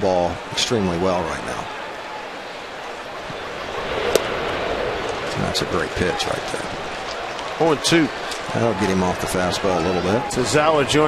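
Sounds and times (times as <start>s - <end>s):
ballpark crowd noise: 0.0s - 11.0s
baseball smacking into leather mitt: 4.0s - 4.4s.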